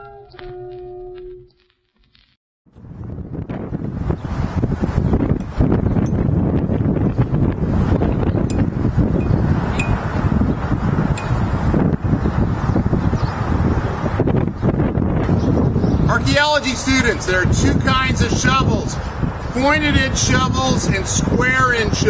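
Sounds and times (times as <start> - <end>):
wind buffeting microphone: 2.7 - 22.0.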